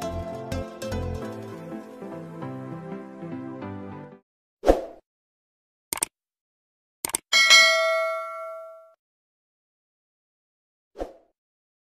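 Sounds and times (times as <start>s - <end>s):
mouse clicks: 5.9s - 6.1s, 7.0s - 7.2s
bright bell ding: 7.3s - 9.0s.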